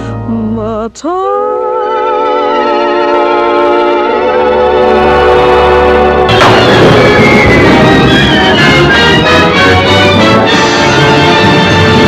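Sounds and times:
woman singing with vibrato: 0.1 - 2.0
band chord: 1.7 - 12.0.

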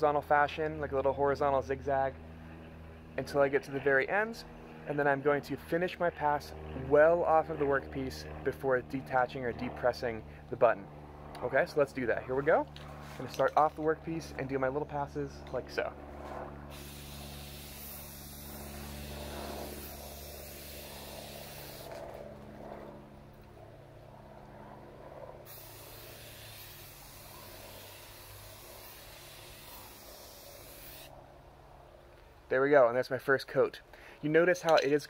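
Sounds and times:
spray paint can hissing: 16.7 - 22.0, 25.5 - 31.1.

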